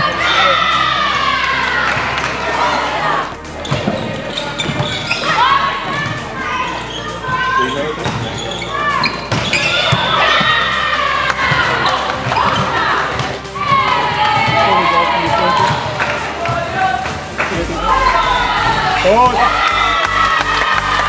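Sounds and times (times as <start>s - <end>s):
girls shouting and calling: 0.0s - 3.3s, 5.1s - 7.8s, 8.7s - 21.0s.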